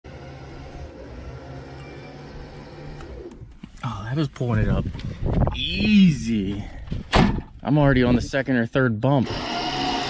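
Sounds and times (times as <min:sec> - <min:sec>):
electric winch humming: 0:00.1 - 0:03.5, 0:09.2 - 0:10.0.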